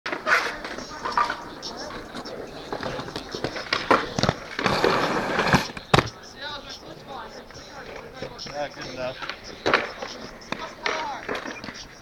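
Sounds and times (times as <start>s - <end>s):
skateboard wheels rolling on concrete: 0.0s - 12.0s
skateboard clacks: 0.1s - 12.0s.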